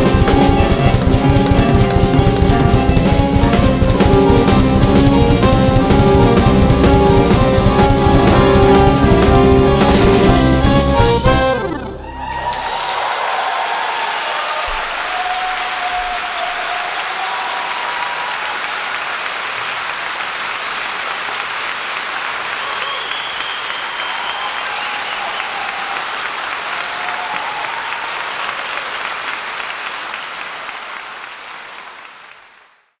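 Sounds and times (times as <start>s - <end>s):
audience applause: 0.0s - 33.0s.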